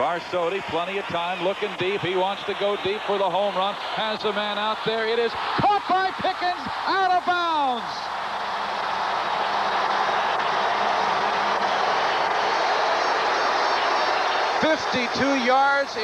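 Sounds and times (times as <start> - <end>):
stadium crowd cheering: 0.0 - 16.0
announcer shouting excitedly: 4.0 - 8.0.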